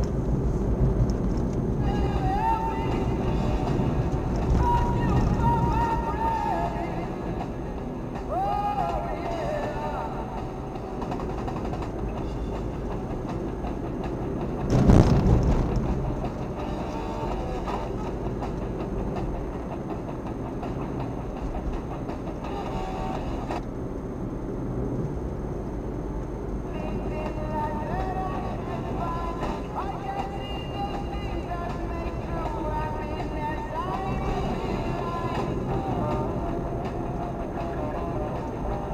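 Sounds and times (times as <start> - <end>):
car road and engine rumble: 0.0 - 38.9
rock music on car radio: 1.8 - 23.6, 26.8 - 38.9
loud rushing thump: 14.6 - 16.4.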